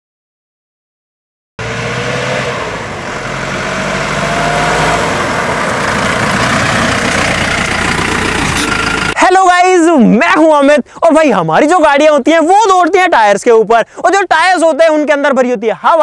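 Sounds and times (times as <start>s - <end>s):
car engine approaching: 1.6s - 9.2s.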